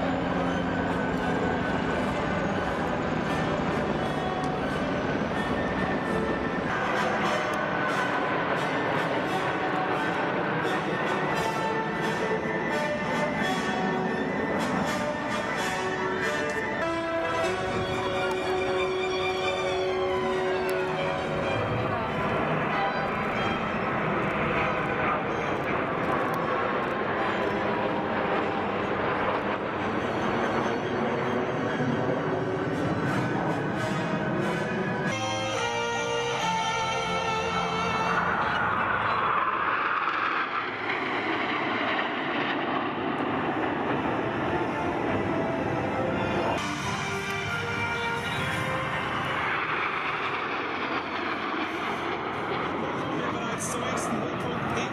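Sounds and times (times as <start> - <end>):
jet rumble overhead: 0.0 - 54.9
voices: 52.9 - 54.9.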